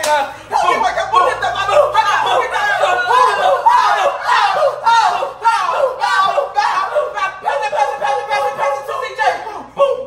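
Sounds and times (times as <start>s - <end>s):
people shouting excitedly: 0.4s - 10.0s.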